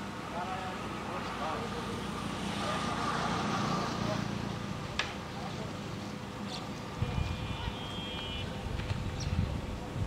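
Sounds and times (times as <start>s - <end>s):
distant people talking: 0.2s - 10.0s.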